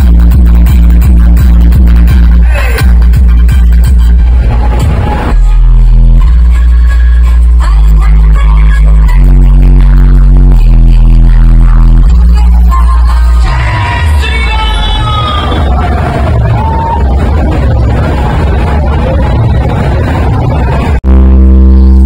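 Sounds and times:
loud electronic dance music: 0.0s - 22.0s.

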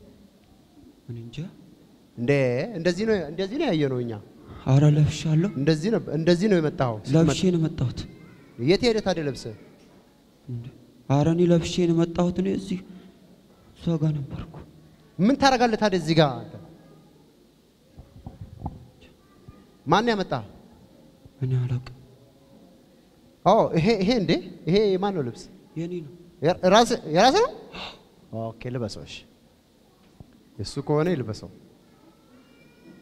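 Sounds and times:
microphone handling bumps: 18.0s - 18.9s.

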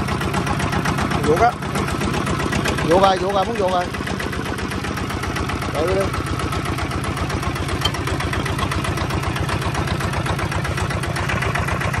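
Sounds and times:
diesel tiller engine chugging: 0.0s - 12.0s.

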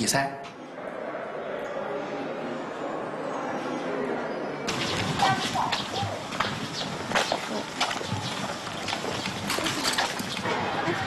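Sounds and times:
street background noise: 0.0s - 11.0s
footsteps on street: 4.7s - 11.0s.

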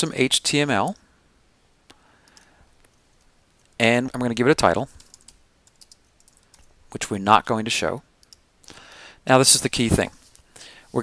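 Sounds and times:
computer mouse click: 5.0s - 6.7s, 8.2s - 8.4s.

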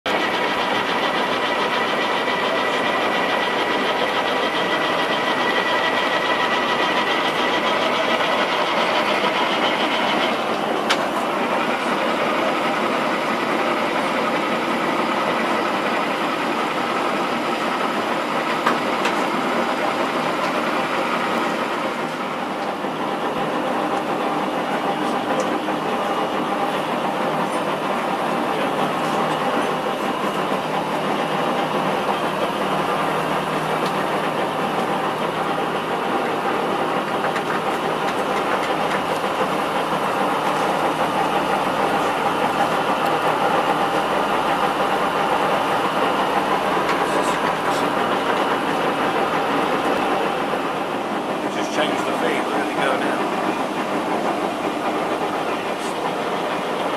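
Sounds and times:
lathe whirring: 0.1s - 56.9s.

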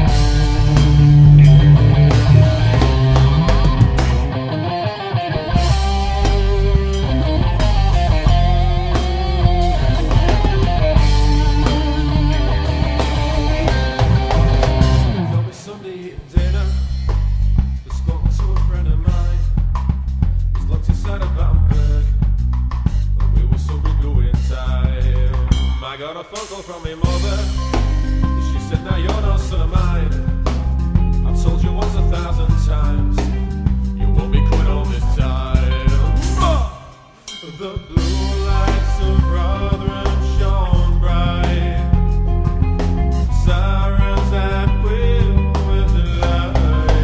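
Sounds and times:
pitched melodic part: 0.0s - 15.5s
held bass notes: 0.0s - 15.6s, 16.2s - 26.0s, 27.0s - 37.2s, 37.9s - 47.0s
rock band playing instrumental: 0.0s - 17.9s, 25.6s - 47.0s
drum kit beat: 0.0s - 47.0s.

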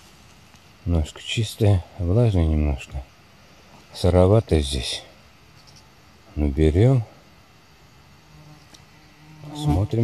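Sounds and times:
flying insect buzzing: 5.3s - 6.4s, 7.1s - 10.0s.

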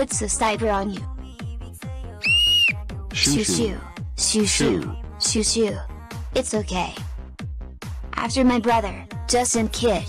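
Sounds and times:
high steady whistle tone: 2.2s - 2.8s
electronic music with fast beat: 3.2s - 5.0s.

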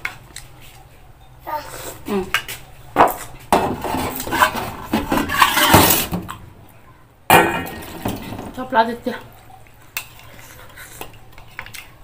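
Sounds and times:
eating sounds: 9.2s - 12.0s.

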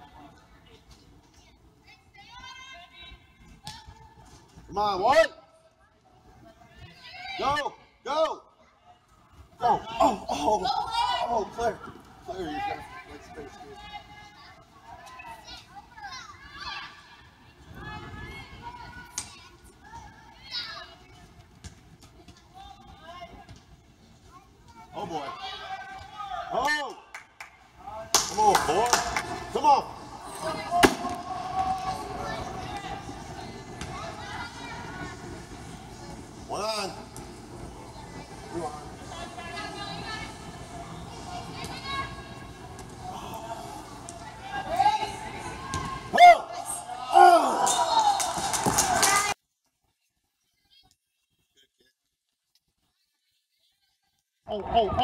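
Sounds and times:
indistinct chatter: 5.4s - 49.4s.

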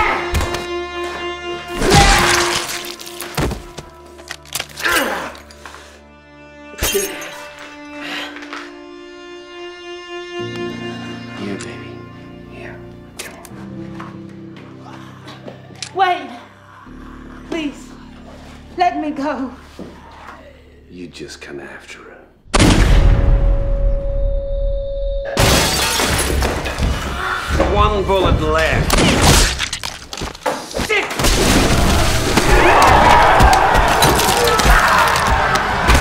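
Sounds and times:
music: 0.0s - 36.0s
low music drone: 7.5s - 21.4s
people shouting and screaming: 31.9s - 36.0s.

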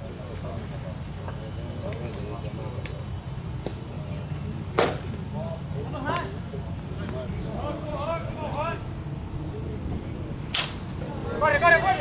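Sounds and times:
baseball smacking into mitt: 4.8s - 5.1s
distant shouting voices: 5.6s - 12.0s.

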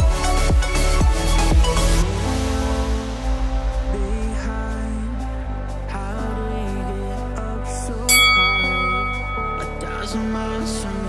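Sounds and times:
background music: 0.0s - 11.0s
bell-like chime: 8.1s - 10.4s.

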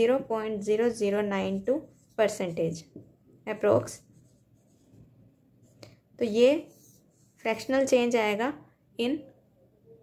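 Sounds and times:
marker writing on whiteboard: 0.8s - 7.9s.

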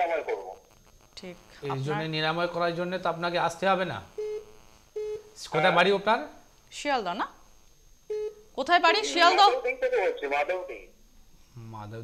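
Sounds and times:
person speaking: 1.2s - 2.2s, 8.8s - 10.9s
telephone beeps: 4.2s - 4.4s, 8.1s - 8.4s.

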